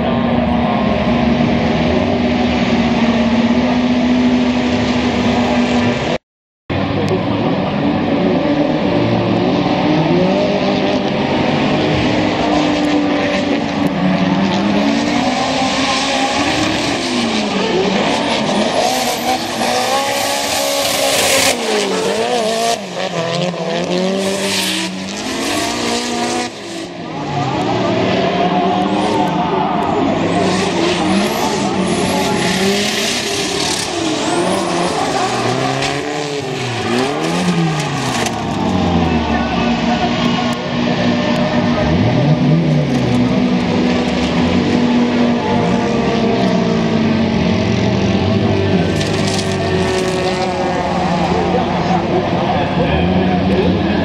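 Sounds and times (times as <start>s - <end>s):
car engines revving: 0.0s - 54.0s
tyres squealing and skidding: 14.0s - 26.2s, 27.0s - 43.3s.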